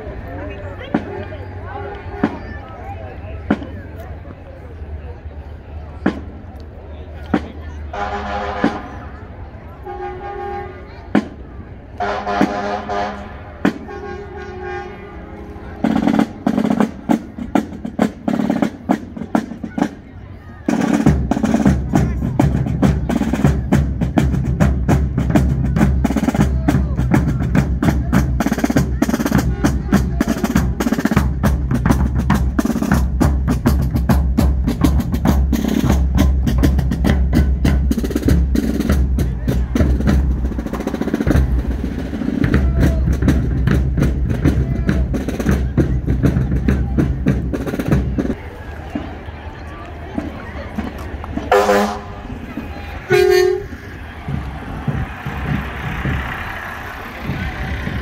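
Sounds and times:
field drums beating a cadence: 7.3s - 9.2s, 9.8s - 20.0s, 20.7s - 48.4s, 51.4s - 58.0s.

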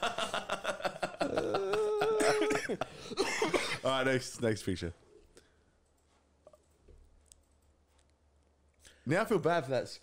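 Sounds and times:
man coughing: 1.1s - 4.0s
man speaking: 3.6s - 5.0s, 9.0s - 10.0s.

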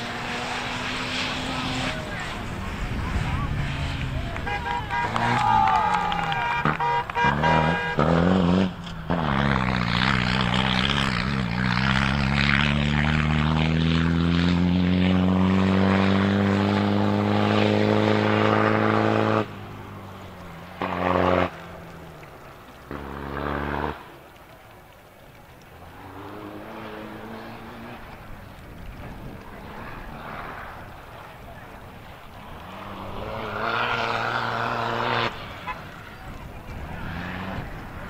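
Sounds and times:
rally car engine revving: 0.0s - 24.6s, 25.4s - 38.0s.

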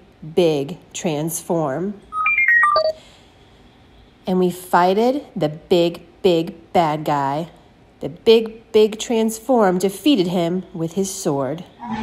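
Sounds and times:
short electronic beeps: 2.1s - 3.0s.

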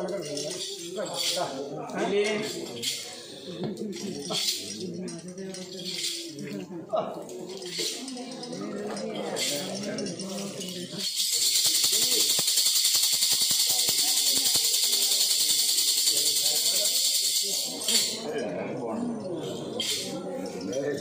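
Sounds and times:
metallic jingle rattle shaken: 0.0s - 6.7s, 7.3s - 18.4s, 19.1s - 21.0s
low voices murmuring: 0.0s - 21.0s.

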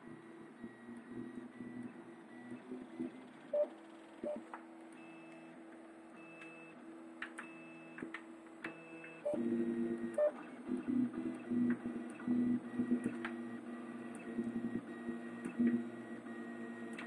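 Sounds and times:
printer stepper motors humming: 0.0s - 4.4s, 8.7s - 17.0s.

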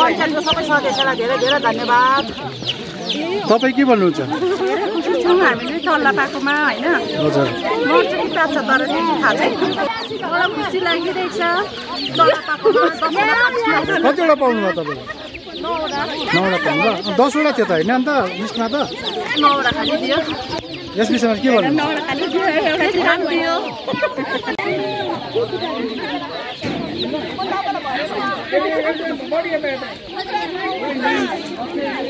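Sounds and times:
chicks peeping: 0.0s - 32.0s.

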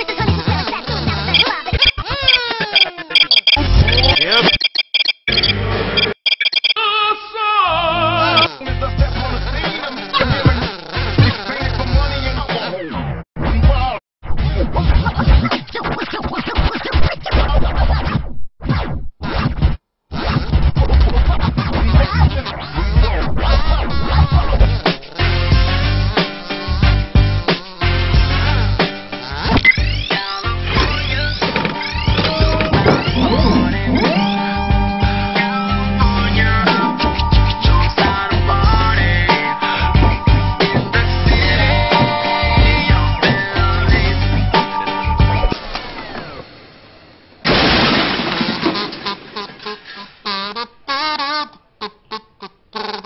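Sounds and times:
turntable scratching: 0.0s - 4.6s, 9.2s - 25.3s, 28.8s - 34.6s, 35.4s - 46.4s
cartoon music: 1.2s - 4.6s, 28.4s - 45.5s
hip-hop beat: 30.0s - 45.6s.

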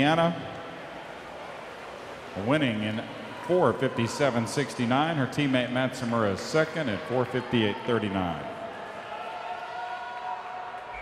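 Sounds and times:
murmur of distant voices: 0.0s - 11.0s.

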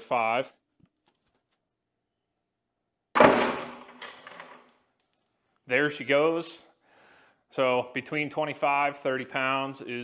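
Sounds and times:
bucket and weights knocking: 3.2s - 4.6s
bucket of weights crashing on floor: 3.2s - 4.7s.

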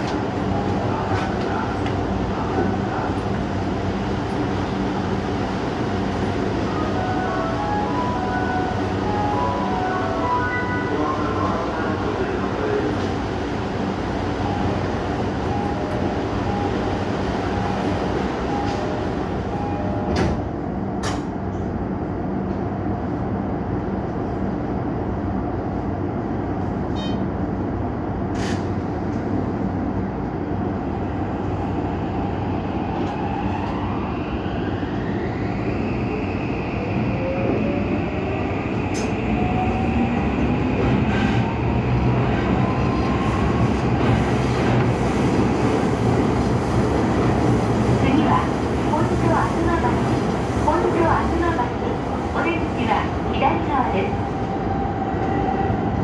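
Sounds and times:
train running noise: 0.0s - 24.6s, 25.7s - 56.0s.

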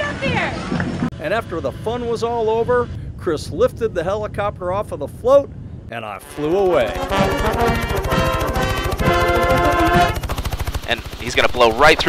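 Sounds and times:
helicopter rotor chopping: 0.0s - 3.0s, 6.1s - 12.0s
brassy music sting: 6.2s - 10.2s.

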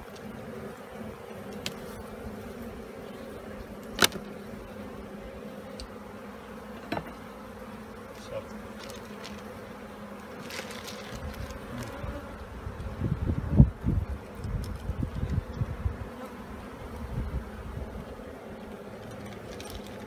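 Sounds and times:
honeybees buzzing: 0.0s - 20.0s.

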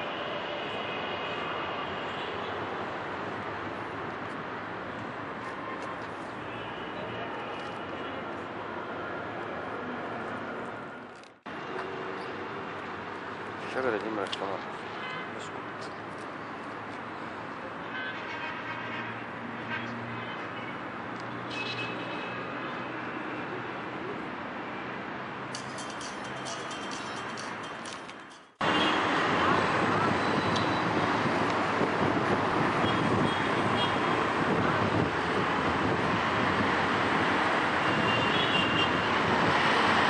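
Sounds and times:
road traffic: 0.0s - 40.0s.

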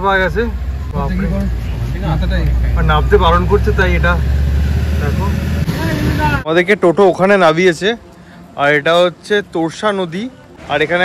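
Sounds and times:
people talking: 0.0s - 4.2s, 5.0s - 8.0s
vehicle engine rumbling: 0.0s - 6.5s.

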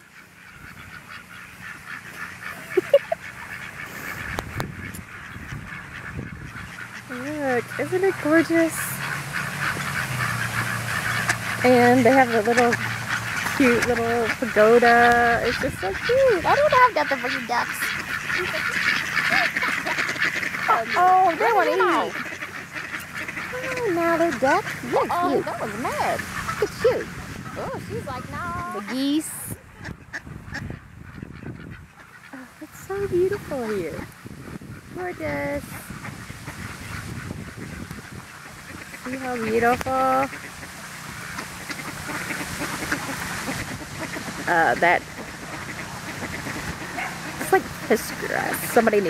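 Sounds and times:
fountains rushing: 0.0s - 29.7s, 32.2s - 34.2s, 34.9s - 37.2s, 38.0s - 49.0s
ducks quacking: 0.0s - 49.0s
geese honking: 0.0s - 49.0s.

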